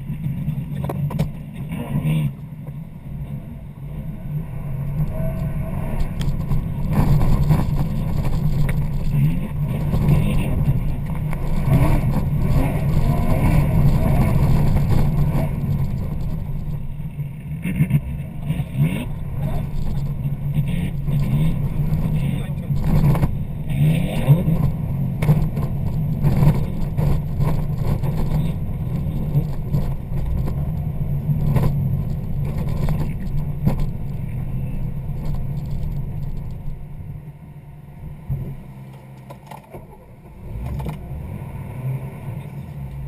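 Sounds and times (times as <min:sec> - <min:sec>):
rally car engine revving: 0:00.0 - 0:43.0.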